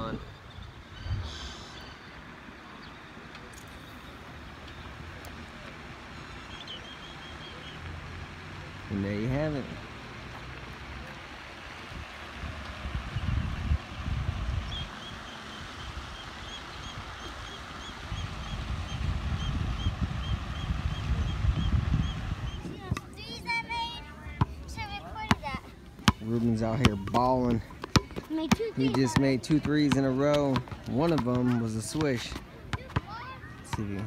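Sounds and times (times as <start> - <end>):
voices: 1.1 - 34.0
fountain water rushing: 1.4 - 22.6
wind buffeting microphone: 11.8 - 23.6.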